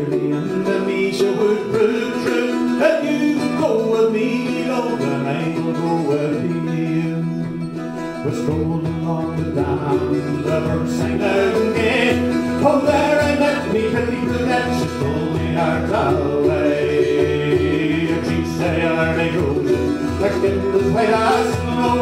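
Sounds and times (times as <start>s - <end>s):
frame drum beat: 0.0s - 5.7s, 8.2s - 22.0s
mandolin and bouzouki strumming: 0.0s - 22.0s.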